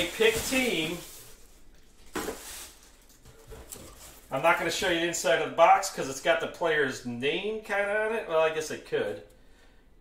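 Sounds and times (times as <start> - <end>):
handling noise of box packaging: 0.0 - 4.6
plastic bag rustling: 0.0 - 5.0.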